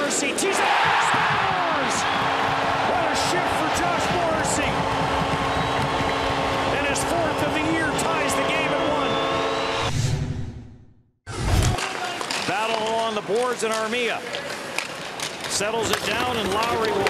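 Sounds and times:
crowd noise: 0.0 - 9.8
hockey sticks and puck clacking: 11.6 - 17.0.

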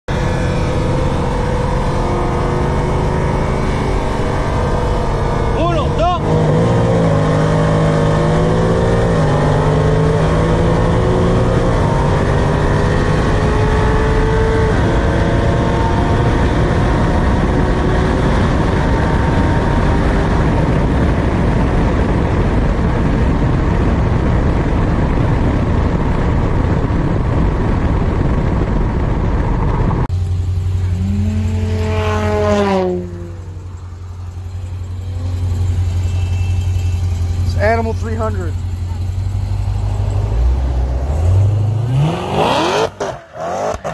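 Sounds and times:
car engine at full throttle: 0.0 - 43.9
rising and falling tone: 0.1 - 18.1, 29.6 - 43.9
wind and road noise: 0.1 - 43.9.

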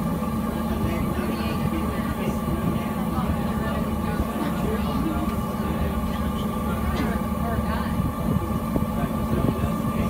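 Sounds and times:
machinery humming: 0.0 - 10.0.

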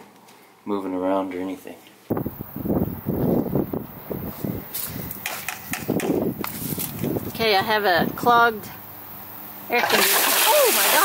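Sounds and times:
footsteps on concrete: 3.1 - 7.4.

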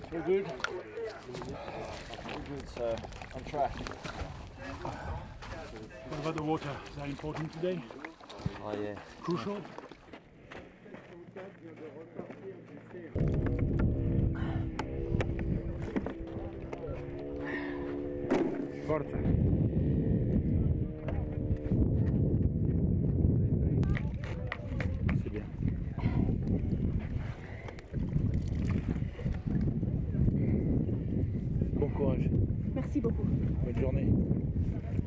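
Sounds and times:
wind rumbling on microphone: 0.0 - 7.2, 13.1 - 35.0
steady droning tone: 13.0 - 23.8.

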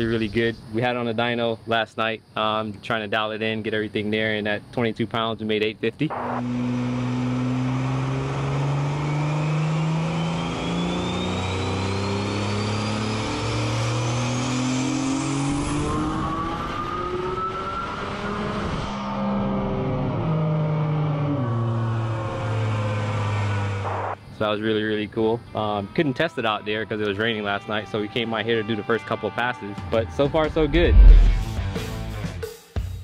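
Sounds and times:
engine revving on a dyno: 6.1 - 24.2
high turbo whine: 6.1 - 27.8, 30.4 - 31.7.

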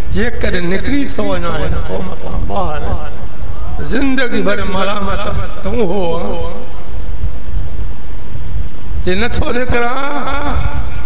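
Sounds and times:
loud low rumble with hiss: 0.0 - 11.0.

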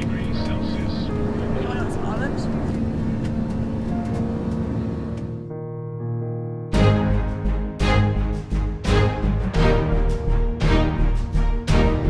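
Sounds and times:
faint voices: 0.0 - 3.4
airliner engine drone: 0.0 - 5.5
music: 0.0 - 12.0.

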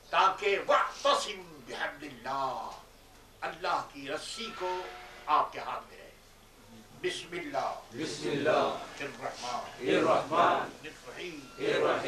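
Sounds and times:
low background noise: 0.0 - 12.0
man speaking: 0.1 - 6.2, 6.8 - 12.0.

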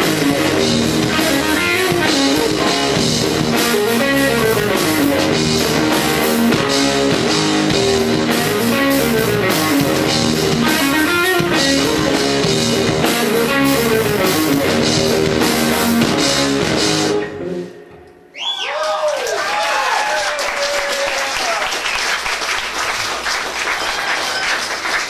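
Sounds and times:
rock band playing live: 0.0 - 18.1
electric guitar: 0.0 - 18.3.

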